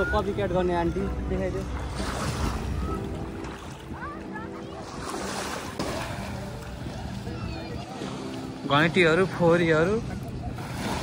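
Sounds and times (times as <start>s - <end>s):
murmur of distant voices: 0.0s - 11.0s
small waves washing on shore: 1.2s - 11.0s.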